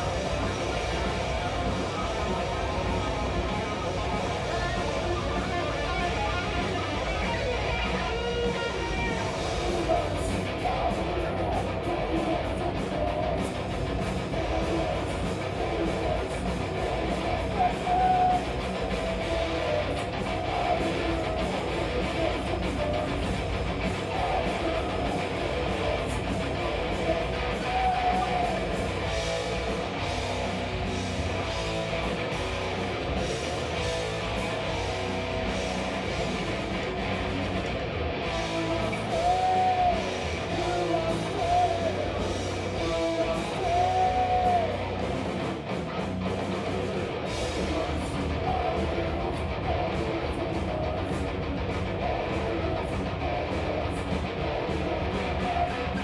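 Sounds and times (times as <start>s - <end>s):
bass guitar: 0.0s - 56.0s
distorted electric guitar: 0.0s - 56.0s
drums and cymbals: 0.0s - 56.0s.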